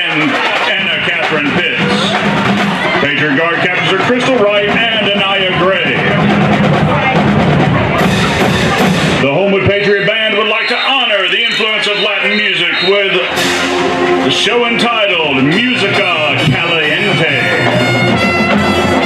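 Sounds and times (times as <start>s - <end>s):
drumline hits: 0.0s - 19.0s
marching band playing: 0.0s - 19.0s
bright cymbal crash: 13.3s - 14.4s.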